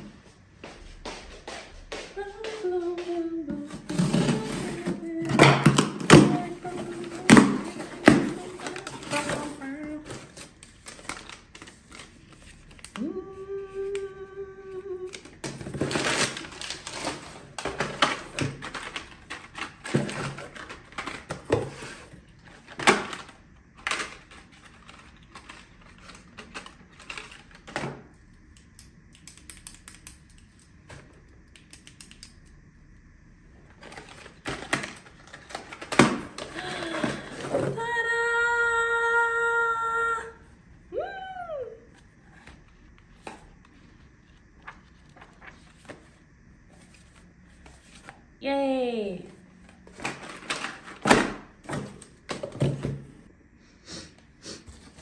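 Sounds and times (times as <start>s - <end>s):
cardboard flaps and packing rustling: 3.5s - 12.9s, 15.0s - 27.8s.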